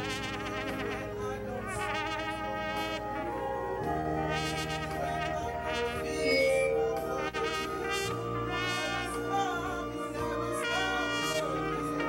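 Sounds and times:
worship band music: 0.0 - 12.0
wavering high melody line: 5.2 - 11.1.

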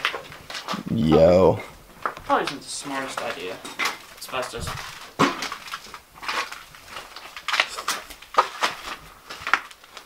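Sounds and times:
knocks scrapes and crunches: 2.3 - 10.0.

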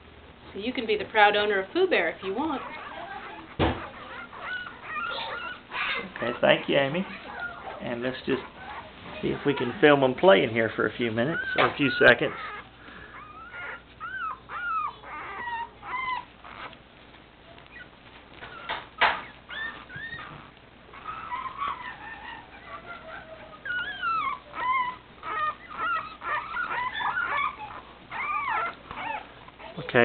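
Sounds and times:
puppies squealing and whimpering: 0.6 - 30.0.

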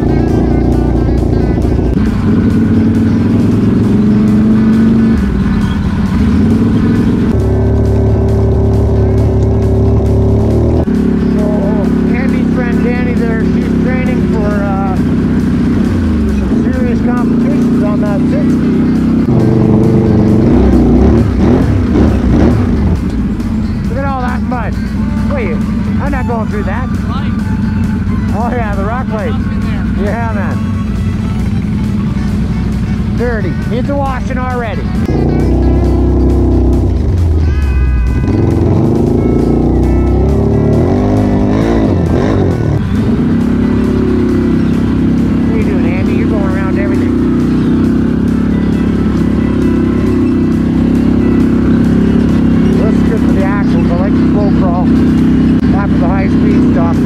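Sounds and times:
music with singing voice: 0.0 - 10.1, 10.8 - 57.0
atv engine running: 0.0 - 57.0.

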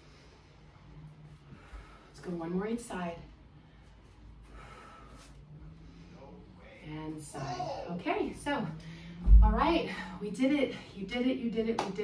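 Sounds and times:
faint room hum: 0.0 - 12.0
woman breathing hard: 3.6 - 6.1.

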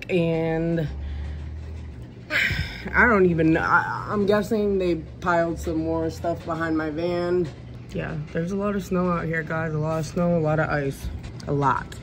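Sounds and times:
distant bulldozer engines rumbling: 0.0 - 12.0.

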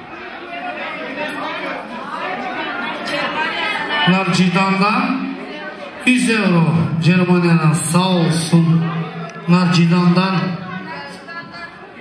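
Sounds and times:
crowd conversation: 0.0 - 12.0.

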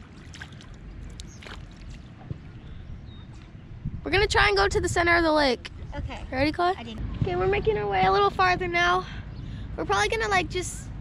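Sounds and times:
paddles splashing in water: 0.0 - 3.6
wind rumble on microphone: 0.0 - 11.0.

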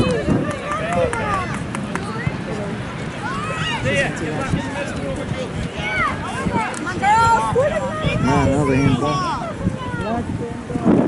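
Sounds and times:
people shouting and calling: 0.0 - 2.4, 3.0 - 10.2.

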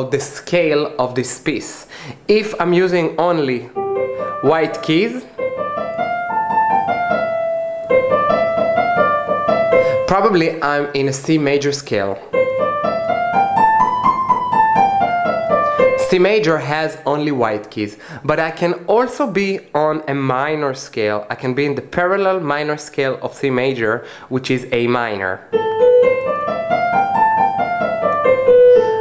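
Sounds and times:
electronic keyboard piano scale: 0.0 - 29.0.

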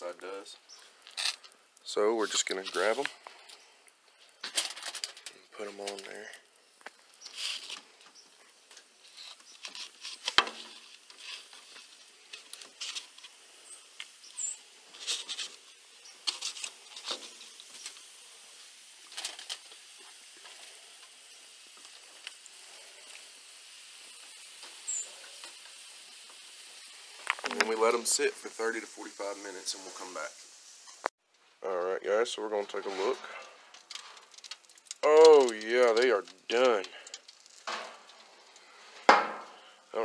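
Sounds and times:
faint steady hiss: 0.0 - 40.0
foil crinkling: 0.9 - 1.6, 4.4 - 23.4, 33.2 - 38.8.

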